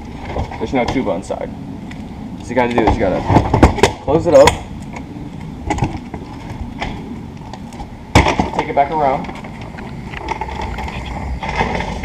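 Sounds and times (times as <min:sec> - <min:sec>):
case casters rolling over concrete: 0:02.4 - 0:12.0.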